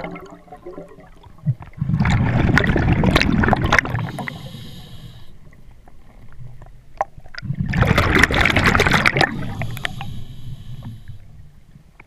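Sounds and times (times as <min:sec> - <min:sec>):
underwater air bubbles rushing: 0:00.0 - 0:04.6, 0:07.3 - 0:11.0.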